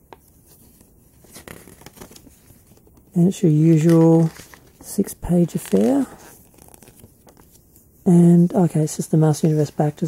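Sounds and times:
paper booklet rustling: 0.1 - 10.0.

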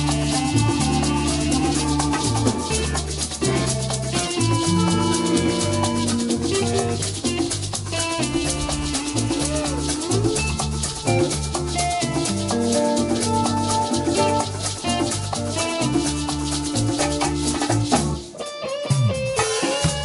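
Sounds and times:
live latin band playing: 0.0 - 20.0
maracas shaking: 0.0 - 20.0.

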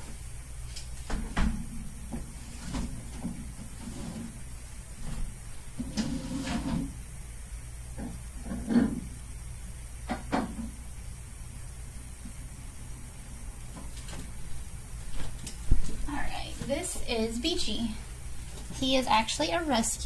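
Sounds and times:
glass tank scraping slide: 3.6 - 4.4, 5.8 - 7.0.

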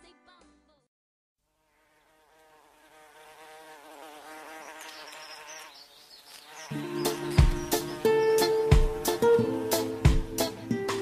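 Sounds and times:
buzzing bee sound effect: 1.5 - 10.5.

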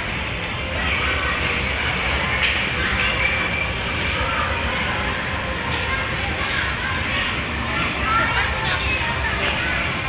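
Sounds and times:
distant crowd voices: 0.0 - 10.0.

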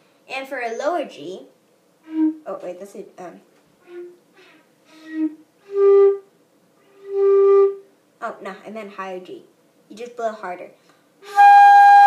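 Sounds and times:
flute notes: 2.0 - 2.5, 3.8 - 7.9, 11.2 - 12.0.

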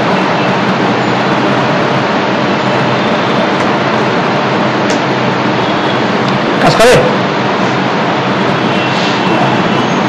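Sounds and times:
loud rushing noise: 0.0 - 10.0.

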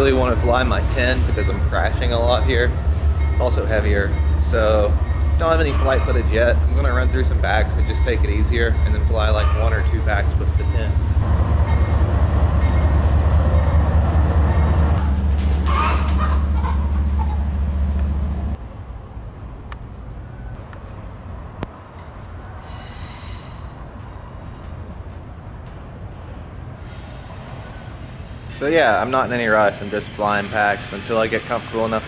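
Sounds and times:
drone motors rumbling: 9.9 - 18.6.

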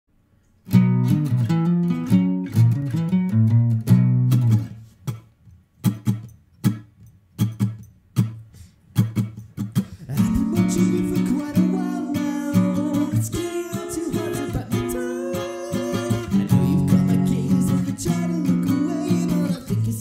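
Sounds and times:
acoustic guitar strumming chords: 0.7 - 5.2, 5.8 - 20.0.

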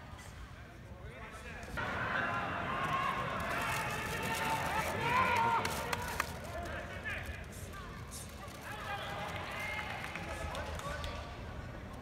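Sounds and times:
crowd calling and talking: 0.0 - 12.0.

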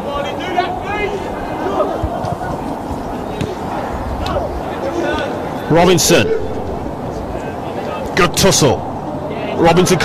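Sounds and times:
distant players shouting: 0.0 - 10.0.

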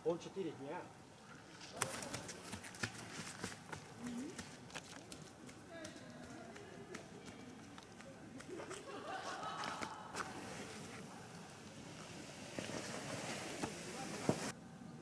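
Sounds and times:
faint distant voices: 3.8 - 15.0.

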